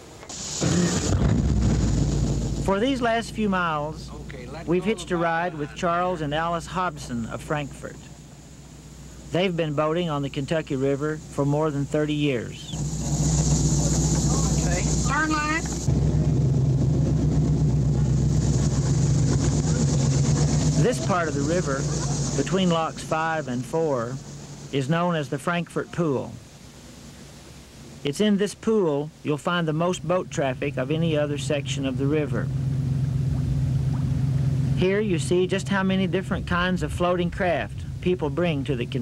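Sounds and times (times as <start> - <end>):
boat engine rumbling: 0.0 - 39.0.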